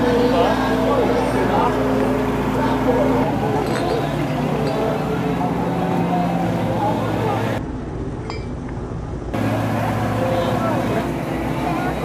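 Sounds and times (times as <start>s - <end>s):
many people talking: 0.0s - 7.6s, 9.4s - 12.0s
low engine hum: 0.0s - 12.0s.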